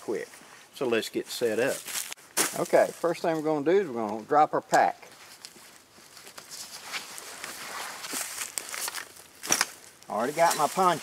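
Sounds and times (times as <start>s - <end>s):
dry leaves crunching: 1.6s - 3.6s, 5.1s - 11.0s
nylon backpack rustling: 5.2s - 11.0s.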